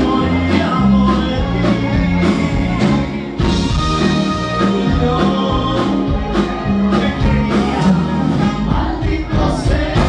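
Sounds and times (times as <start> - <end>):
person singing: 0.0 - 3.3, 3.9 - 10.0
live band playing: 0.0 - 10.0.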